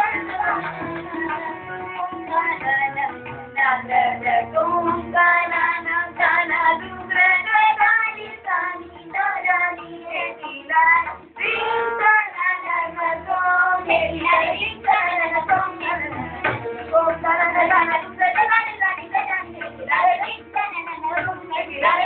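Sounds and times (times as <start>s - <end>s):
tabla: 0.0s - 22.0s
child singing classical vocal: 3.7s - 16.4s.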